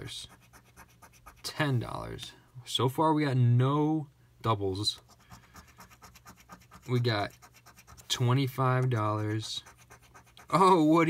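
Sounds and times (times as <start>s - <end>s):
coin scratching paper ticket: 5.0s - 10.6s.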